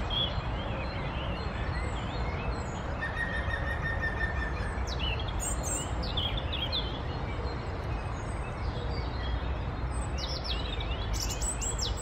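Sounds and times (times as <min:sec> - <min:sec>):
robin singing: 0:00.0 - 0:12.0.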